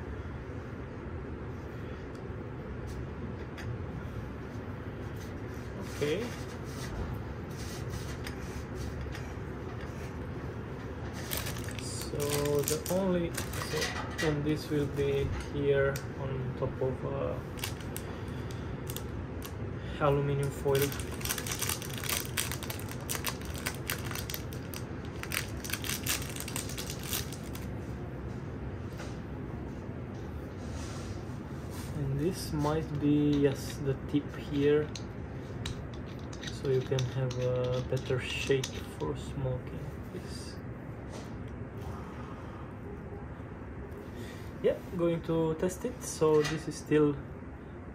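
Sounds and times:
aluminium foil crinkling: 11.2s - 13.9s, 17.4s - 19.6s, 20.4s - 27.7s, 36.1s - 38.1s.

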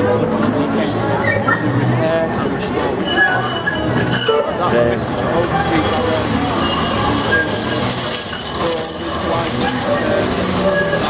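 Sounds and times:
city street noise: 0.0s - 11.0s
rail wheels squealing: 0.4s - 11.0s.

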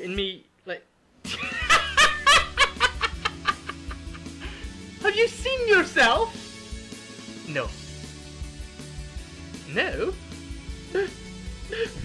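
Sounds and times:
man laughing hard: 1.3s - 4.3s.

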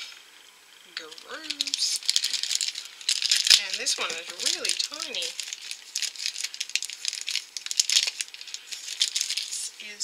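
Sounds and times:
plastic packaging crinkling: 1.0s - 9.9s
plastic toy pieces clicking: 1.5s - 9.4s.

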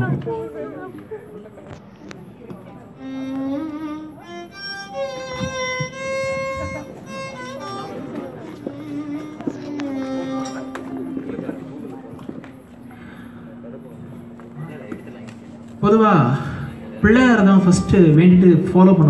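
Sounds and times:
solo violin slow melody: 2.6s - 14.4s.

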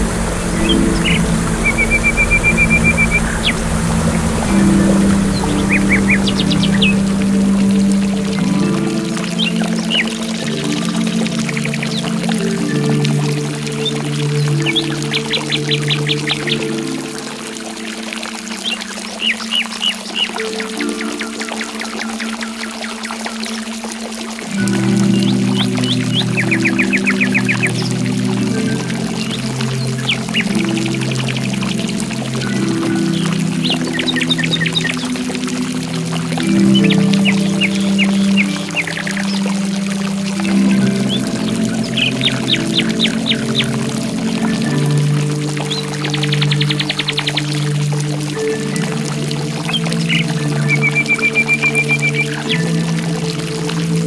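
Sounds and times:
slow piano instrumental: 0.0s - 19.5s, 20.1s - 54.0s
running water: 0.0s - 54.0s
songbirds trilling: 0.0s - 54.0s.

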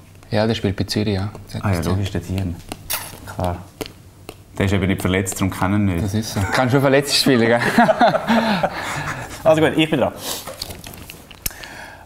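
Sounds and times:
playing card rustling on glass: 10.3s - 11.4s.

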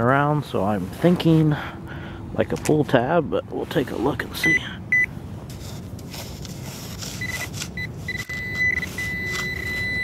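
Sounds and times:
probe tip scraping through gravel: 5.5s - 10.0s
metal detector beeping: 7.0s - 10.0s.

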